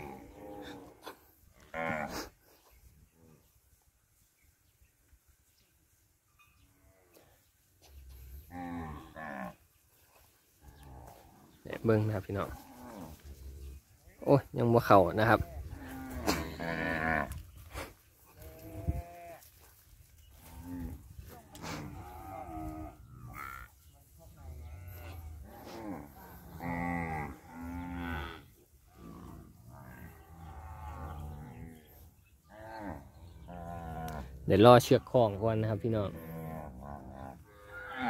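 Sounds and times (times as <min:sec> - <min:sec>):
cattle mooing: 0:15.6 - 0:17.4, 0:21.6 - 0:23.7, 0:24.5 - 0:31.8, 0:32.5 - 0:34.4, 0:36.1 - 0:38.0.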